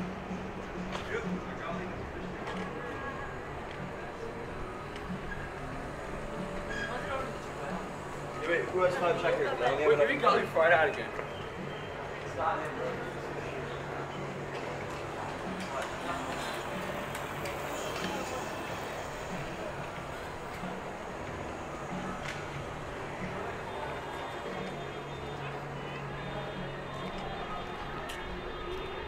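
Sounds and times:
traffic hum: 0:00.0 - 0:29.0
voices of passers-by: 0:00.0 - 0:29.0.

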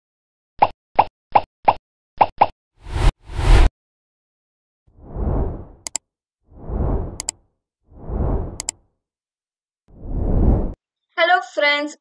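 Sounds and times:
loud whooshes: 0:05.0 - 0:05.8, 0:06.5 - 0:07.3, 0:07.9 - 0:08.7, 0:09.9 - 0:10.8.

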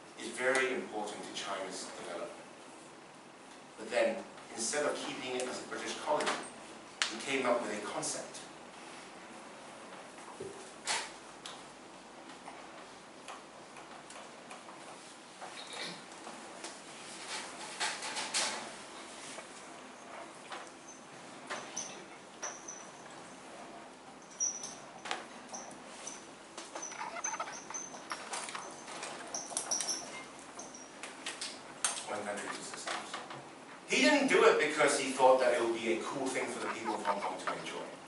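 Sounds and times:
marker squeaking on whiteboard: 0:25.5 - 0:31.0, 0:31.6 - 0:32.9, 0:36.2 - 0:37.9.

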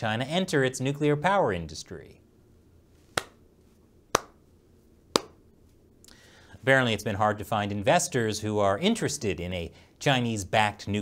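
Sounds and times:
handclaps: 0:03.2 - 0:03.4, 0:04.2 - 0:04.4, 0:05.2 - 0:05.4.

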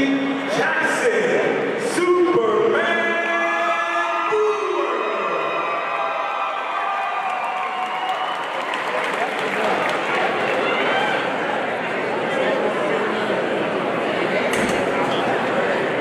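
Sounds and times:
crowd cheering and applauding: 0:04.7 - 0:12.1.

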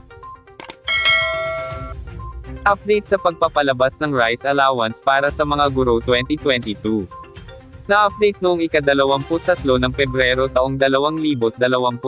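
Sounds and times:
bright bell chime: 0:00.9 - 0:02.0.

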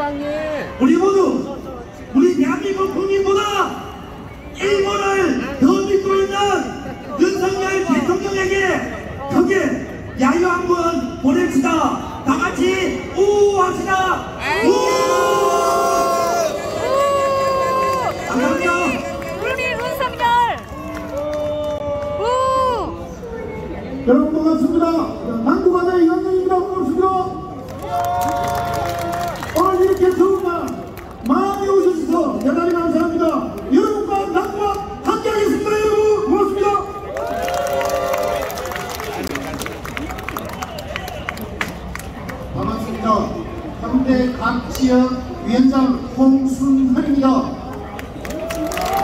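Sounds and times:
murmur of voices: 0:00.0 - 0:49.0
crowd cheering: 0:14.4 - 0:23.0, 0:27.6 - 0:31.5, 0:37.0 - 0:42.0, 0:48.0 - 0:49.0
crowd clapping: 0:16.8 - 0:22.3, 0:27.6 - 0:34.8, 0:37.1 - 0:42.5, 0:47.7 - 0:49.0.

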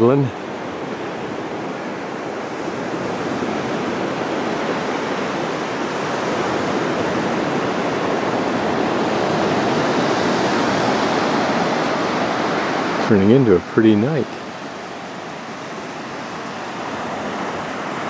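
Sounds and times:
sea surf washing on shore: 0:00.0 - 0:18.0.

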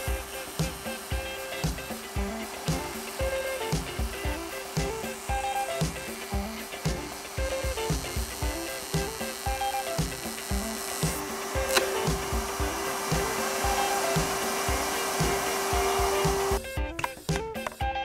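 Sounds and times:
router whining: 0:00.0 - 0:16.7
background music with steady beat: 0:00.0 - 0:18.0.

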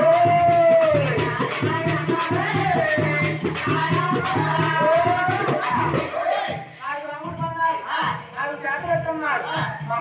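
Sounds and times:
jingling bells: 0:00.0 - 0:07.4
man singing: 0:00.0 - 0:08.3
drums: 0:00.0 - 0:10.0.

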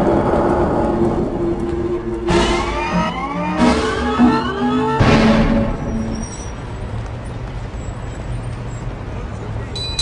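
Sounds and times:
vehicle engine rumble: 0:00.0 - 0:10.0
music note: 0:01.8 - 0:06.1.

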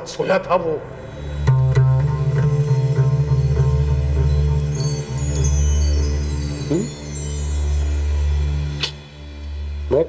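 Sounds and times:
sustained low drone: 0:00.8 - 0:10.0
rising sweep: 0:02.9 - 0:08.8
high chime-like tinkles: 0:03.4 - 0:08.8.

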